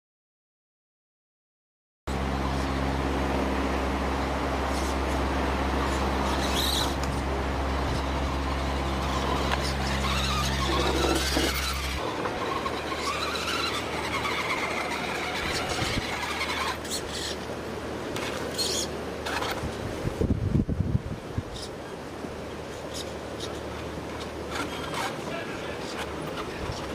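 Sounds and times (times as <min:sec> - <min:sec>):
electric motor and gears whining: 0:02.1 - 0:20.4, 0:21.4 - 0:26.9
outdoor noise: 0:02.1 - 0:26.9
steady low hum: 0:02.1 - 0:26.9.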